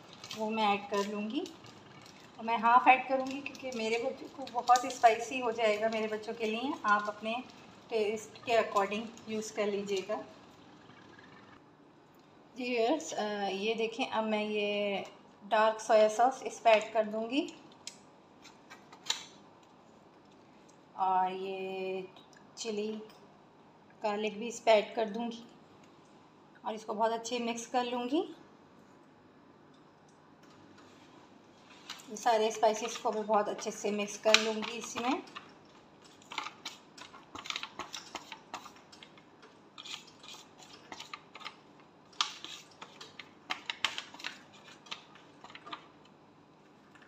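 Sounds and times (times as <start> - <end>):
spatula scraping foil tray: 36.0 - 39.0, 39.8 - 41.6, 42.2 - 43.2, 43.8 - 45.7.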